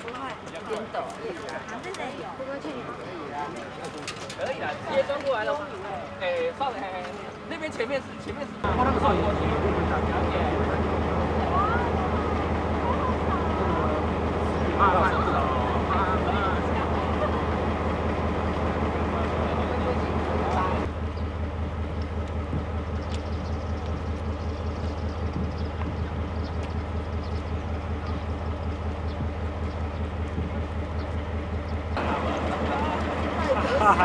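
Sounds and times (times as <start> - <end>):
indistinct crowd chatter: 0.0 - 20.9, 31.9 - 34.0
locomotive engine idling: 0.0 - 34.0.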